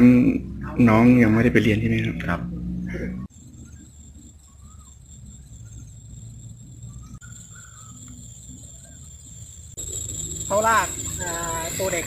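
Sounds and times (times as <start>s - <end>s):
low uneven rumble: 0.0s - 12.0s
faint bird chirps: 3.2s - 12.0s.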